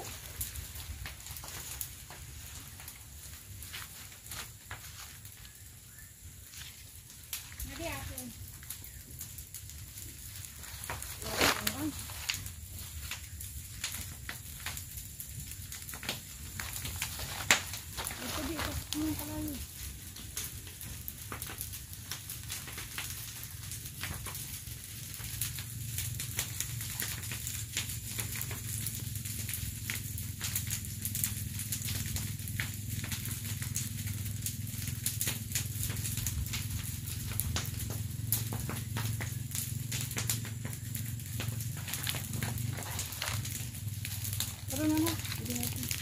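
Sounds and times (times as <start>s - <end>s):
leaves burning and crackling: 0.0s - 46.0s.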